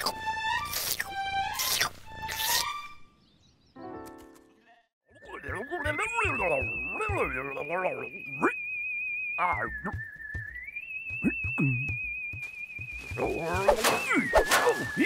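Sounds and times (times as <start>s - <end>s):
leaves rustling: 12.4s - 15.0s.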